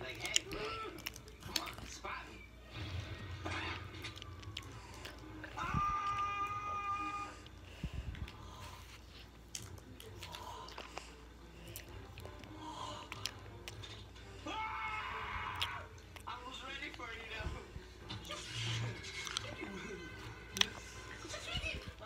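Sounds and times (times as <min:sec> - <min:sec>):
mouth clicks and smacks: 0:00.0 - 0:02.0
child chewing and sucking candy: 0:00.0 - 0:22.0.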